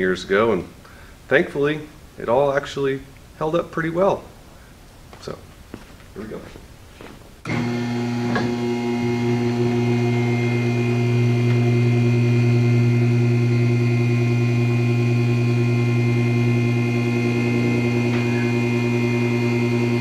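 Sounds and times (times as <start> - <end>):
hydraulic car lift humming: 7.4 - 20.0.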